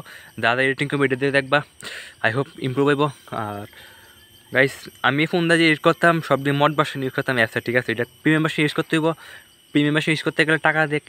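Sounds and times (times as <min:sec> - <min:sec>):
man speaking: 0:00.0 - 0:03.8, 0:04.5 - 0:11.0
high-pitched insect drone: 0:00.0 - 0:11.0.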